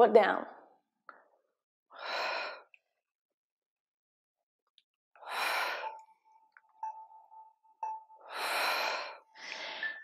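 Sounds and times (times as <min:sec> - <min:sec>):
woman breathing heavily: 0:01.9 - 0:02.8, 0:05.2 - 0:06.2, 0:08.0 - 0:10.0.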